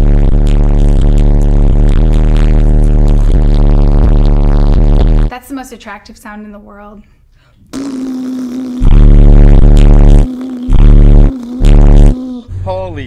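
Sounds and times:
deep bass blasts from subwoofers: 0.0 - 5.3, 8.8 - 12.2.

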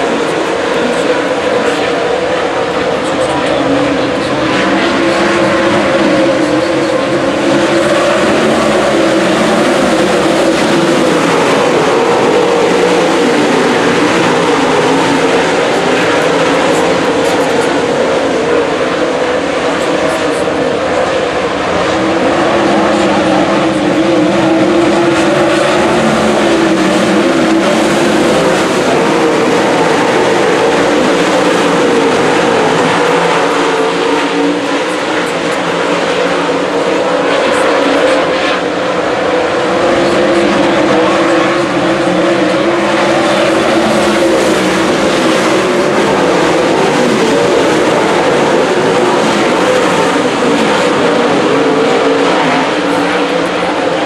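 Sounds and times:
race car engines roaring: 0.0 - 54.0.

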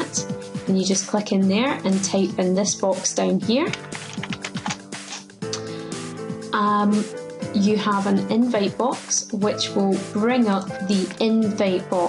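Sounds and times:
background music: 0.0 - 12.0
keyboard keystrokes: 3.7 - 5.2.

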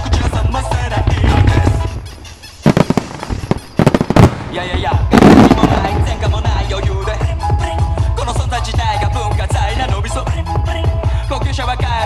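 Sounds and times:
fireworks bangs: 0.0 - 7.4.

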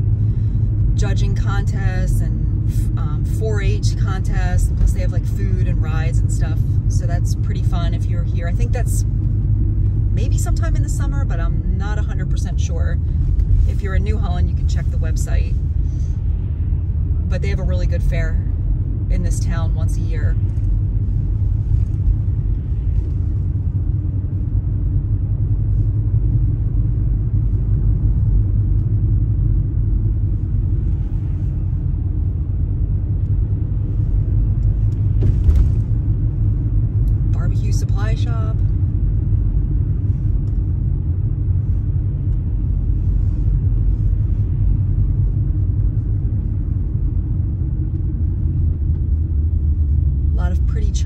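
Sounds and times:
road and engine noise in car: 0.0 - 51.0.

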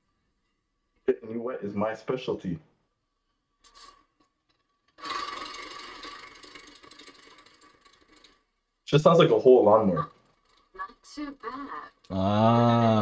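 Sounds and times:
small engine running with rattle: 4.5 - 12.0.

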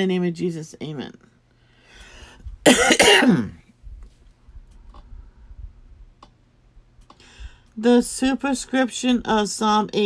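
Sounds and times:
person coughing: 2.6 - 3.6
breath in: 7.2 - 7.7.

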